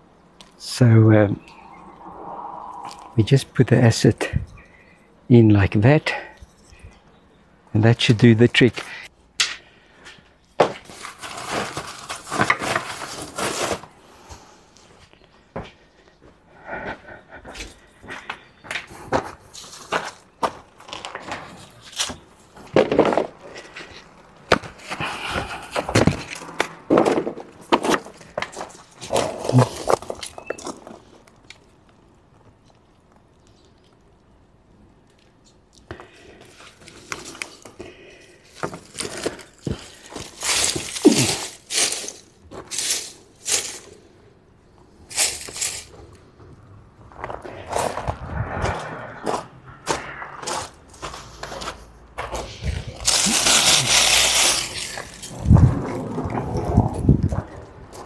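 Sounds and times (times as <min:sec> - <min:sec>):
dry leaves and paper rustling: 0:10.6 - 0:14.1, 0:24.8 - 0:31.7, 0:36.0 - 0:44.2, 0:44.9 - 0:46.2, 0:51.0 - 0:58.0.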